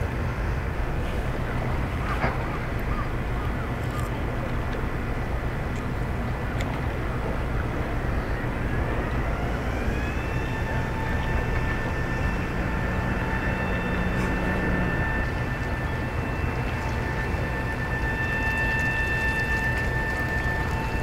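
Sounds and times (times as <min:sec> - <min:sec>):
low hum: 0:00.0 - 0:21.0
tug engines rumbling: 0:00.0 - 0:21.0
whine: 0:00.0 - 0:21.0.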